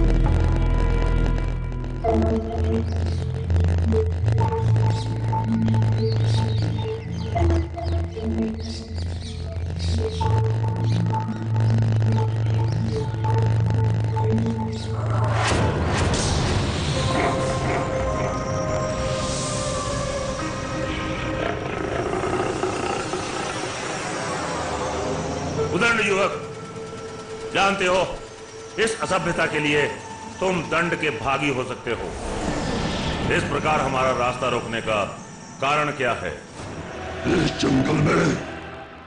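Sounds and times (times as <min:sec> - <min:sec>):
dramatic background score: 0:00.0 - 0:39.0
high chirping sounds: 0:01.9 - 0:15.1.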